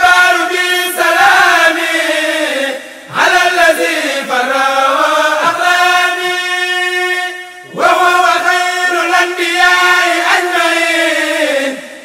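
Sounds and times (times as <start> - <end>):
voices chanting religious poem: 0.0 - 12.0.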